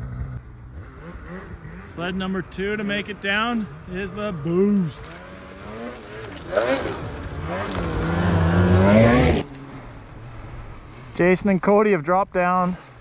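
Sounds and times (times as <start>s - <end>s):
snowmobile revving: 0.0s - 10.9s.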